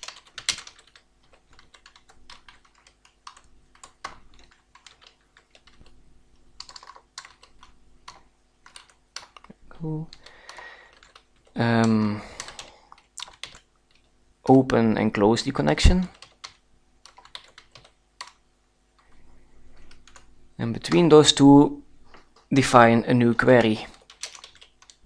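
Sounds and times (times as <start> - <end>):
keyboard typing: 0.0 - 14.1, 15.9 - 18.4, 19.0 - 21.3, 23.4 - 25.0.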